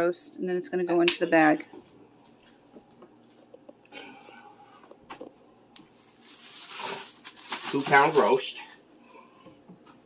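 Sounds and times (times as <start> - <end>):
plastic bag rustling and crinkling: 5.9 - 8.8.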